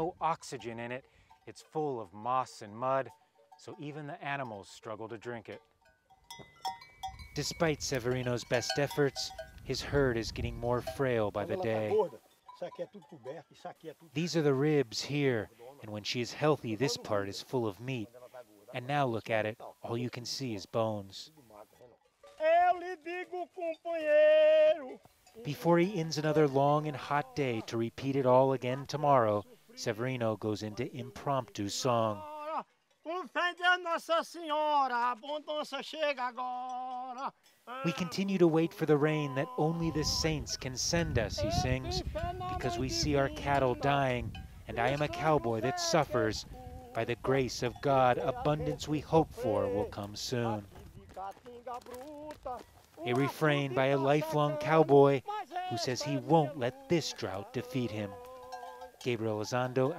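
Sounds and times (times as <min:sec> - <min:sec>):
man singing unaccompanied: 0:29.4 - 0:59.9.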